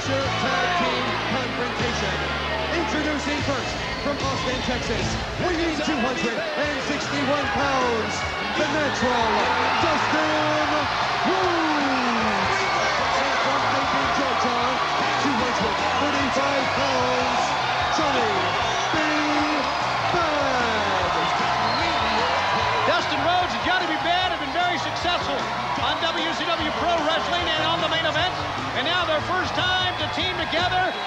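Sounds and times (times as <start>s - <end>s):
arena crowd noise: 0.0s - 31.0s
crowd shouts and whistles: 0.0s - 31.0s.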